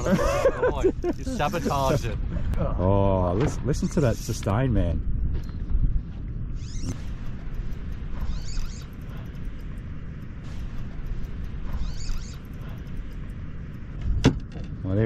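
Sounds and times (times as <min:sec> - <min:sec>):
steady low rumble: 0:00.0 - 0:15.0
fishing reel drag giving line: 0:06.6 - 0:09.6, 0:10.5 - 0:12.8.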